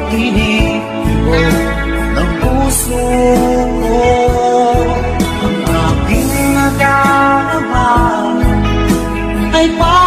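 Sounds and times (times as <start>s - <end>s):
instrumental backing with bass line: 0.0s - 10.0s
person singing: 0.0s - 10.0s.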